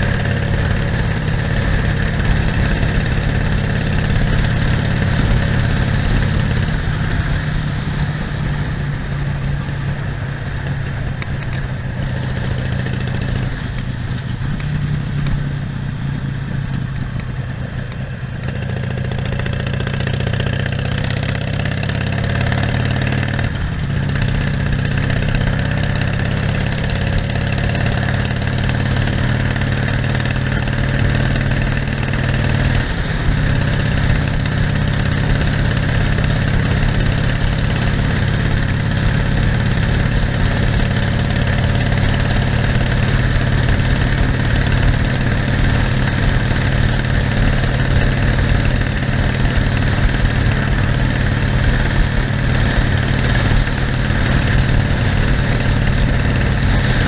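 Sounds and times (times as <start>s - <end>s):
motorcycle engine running: 0.0s - 57.0s
wind and road noise: 0.0s - 57.0s.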